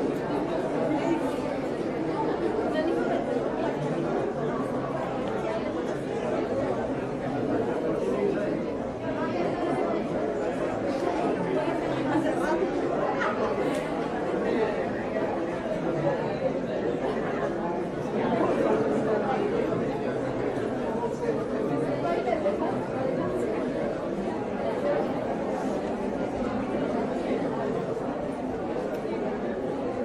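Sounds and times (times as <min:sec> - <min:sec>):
murmur of shoppers' voices: 0:00.0 - 0:30.0.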